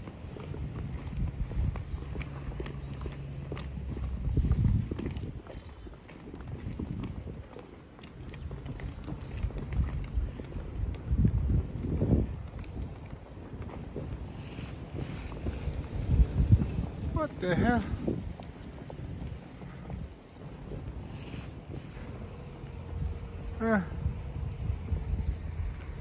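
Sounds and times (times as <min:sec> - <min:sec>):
dress shoes clicking on tarmac: 0:00.0 - 0:26.0
wind rumble on microphone: 0:00.0 - 0:26.0.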